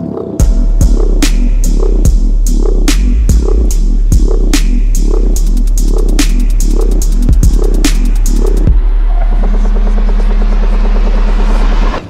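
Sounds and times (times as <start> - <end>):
deep sub-bass note: 0.4 - 12.0
stuttering synth texture: 0.4 - 12.0.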